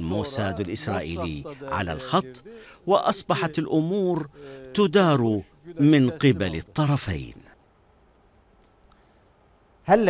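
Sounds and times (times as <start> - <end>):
man speaking: 0.0 - 7.6
faint click: 7.6 - 9.0.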